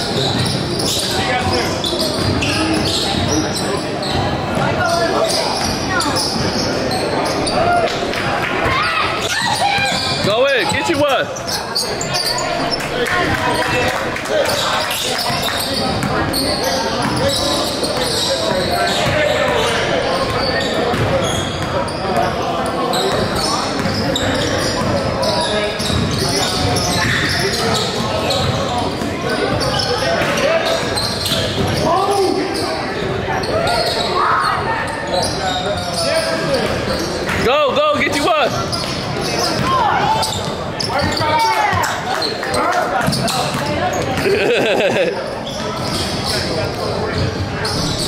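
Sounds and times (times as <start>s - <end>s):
echoing indistinct voices: 0.0s - 48.0s.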